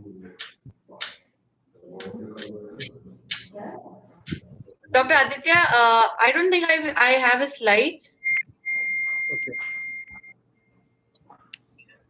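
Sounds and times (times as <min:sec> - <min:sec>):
high-pitched beep and steady tone: 0:08.2 - 0:11.1.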